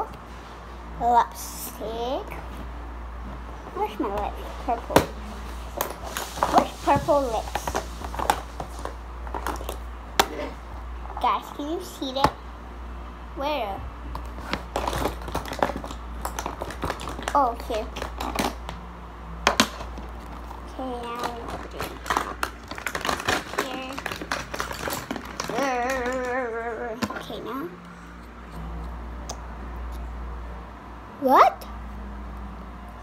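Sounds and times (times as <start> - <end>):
makeup items clicking and tapping: 14.2 - 18.8, 19.5 - 27.4.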